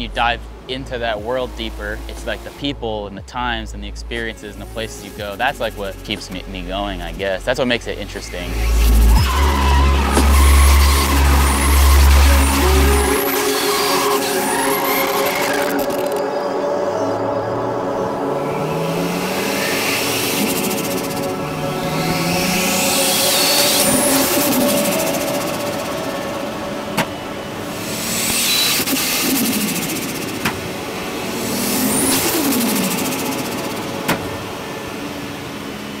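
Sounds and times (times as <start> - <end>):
music with heavy bass: 0.0 - 16.2
car engine revving: 0.0 - 36.0.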